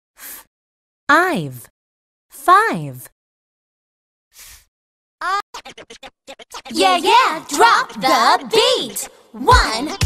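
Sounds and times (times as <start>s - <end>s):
vinyl record scratching: 5.5s - 10.0s
music beat: 5.6s - 10.0s.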